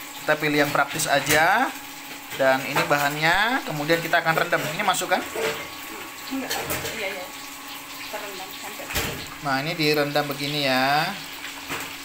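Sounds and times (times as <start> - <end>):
water pouring into metal pot: 0.0 - 12.0.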